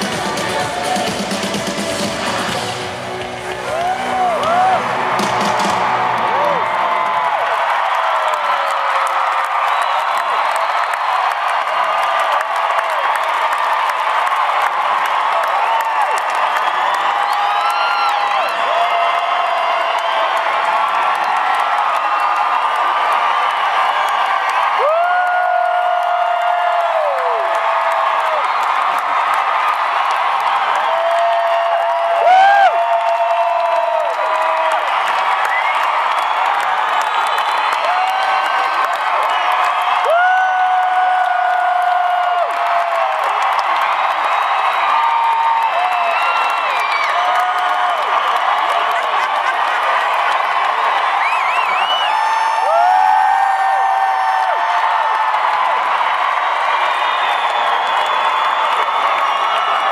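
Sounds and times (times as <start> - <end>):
crowd cheering and screaming: 0.0 - 59.9.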